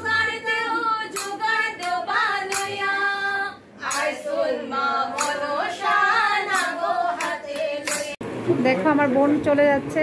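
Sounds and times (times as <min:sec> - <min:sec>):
women singing together: 0:00.0 - 0:08.2
sharp percussive strokes: 0:01.0 - 0:03.0, 0:03.8 - 0:04.3, 0:05.0 - 0:08.2
woman talking: 0:08.5 - 0:10.0.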